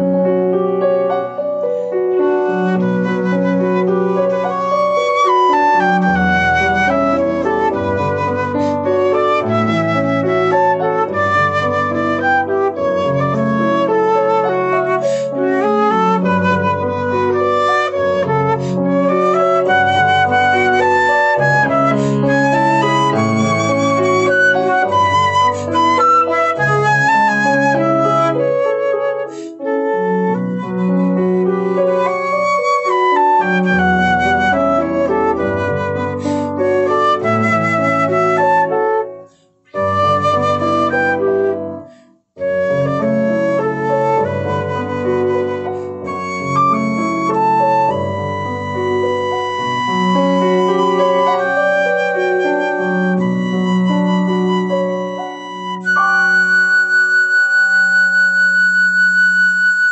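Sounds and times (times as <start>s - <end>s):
flute melody: 0.0s - 59.9s.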